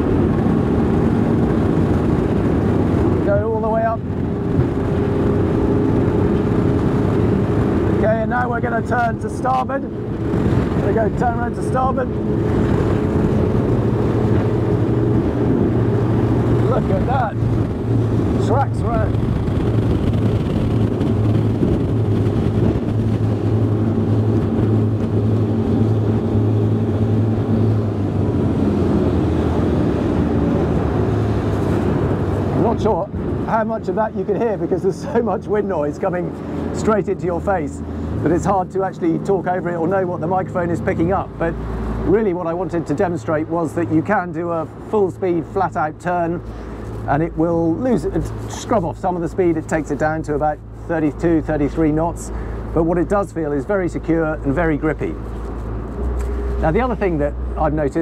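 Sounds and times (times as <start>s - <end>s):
boat engines droning: 0.0s - 58.0s
rush of wind and water: 0.0s - 58.0s.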